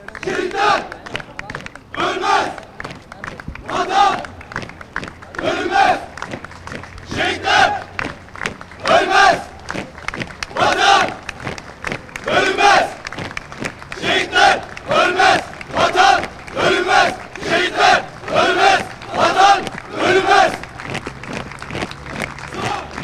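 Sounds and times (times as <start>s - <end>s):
sailors shouting a cadence: 22.5s - 23.0s.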